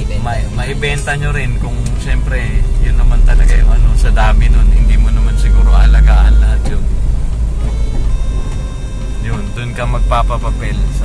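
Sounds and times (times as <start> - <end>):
faint music: 0.0 - 11.0
vehicle engine and road rumble: 0.0 - 11.0.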